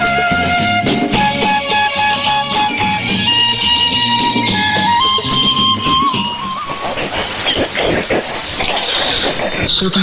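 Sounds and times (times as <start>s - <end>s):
radio static hissing: 6.5s - 10.0s.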